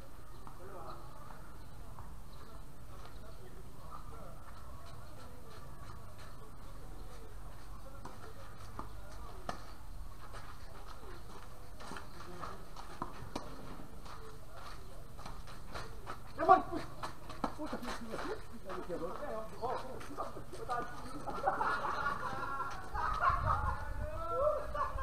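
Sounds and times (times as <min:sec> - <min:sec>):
scattered voices: 0:00.1 - 0:25.0.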